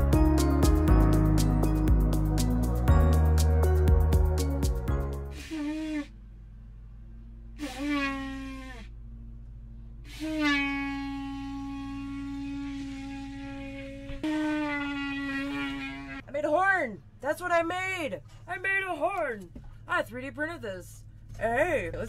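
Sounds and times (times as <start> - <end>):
horn blowing held notes: 4.9 - 6.2, 7.6 - 9.0, 10.1 - 16.2.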